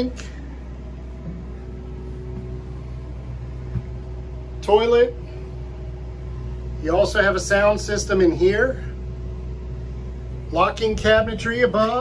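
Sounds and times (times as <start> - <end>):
machinery humming: 0.0 - 12.0
soft thump: 3.6 - 4.0.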